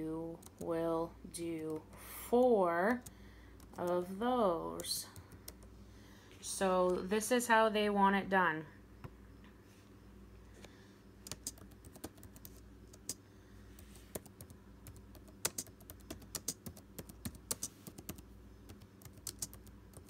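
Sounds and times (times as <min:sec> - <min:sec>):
laptop keyboard typing: 0:00.3 - 0:00.7, 0:03.0 - 0:04.0, 0:04.7 - 0:05.7, 0:11.2 - 0:13.2, 0:13.8 - 0:20.0.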